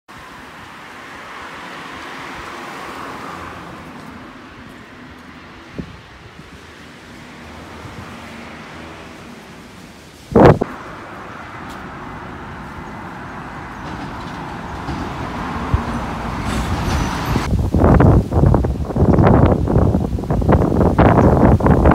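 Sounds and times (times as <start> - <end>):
faint street traffic: 0.1 - 21.9
wind blowing on microphone: 3.4 - 21.9.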